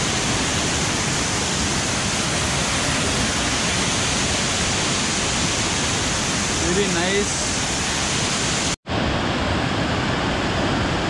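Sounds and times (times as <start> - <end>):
waterfall rushing over rocks: 0.0 - 11.0.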